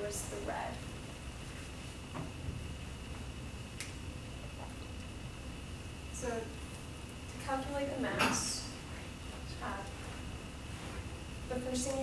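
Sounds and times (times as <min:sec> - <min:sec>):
faint high whine: 0:00.0 - 0:12.0
room hum: 0:00.0 - 0:12.0.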